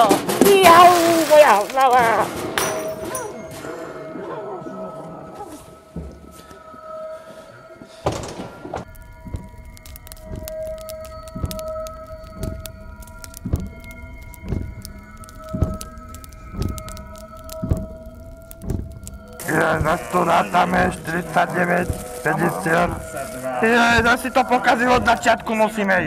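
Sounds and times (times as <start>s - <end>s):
eerie droning music: 1.3s - 26.0s
heavy thudding beat: 8.9s - 25.3s.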